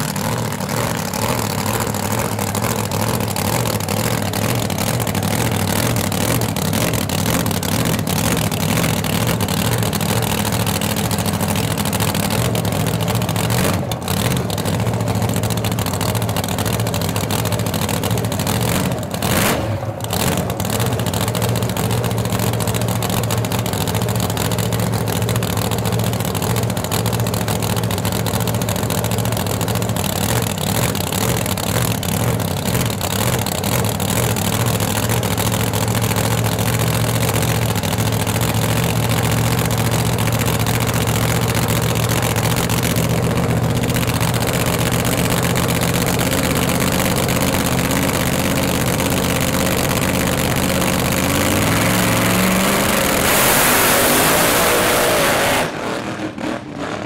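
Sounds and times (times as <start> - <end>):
vee eight engine idling loudly: 0.0 - 55.8.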